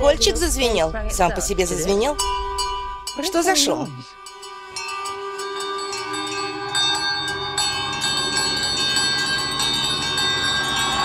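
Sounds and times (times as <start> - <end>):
small bells jangling: 1.9 - 11.0.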